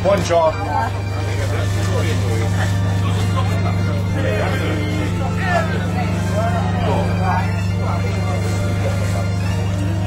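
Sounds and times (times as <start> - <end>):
people talking: 0.0 - 10.0
steady low drone: 0.0 - 10.0.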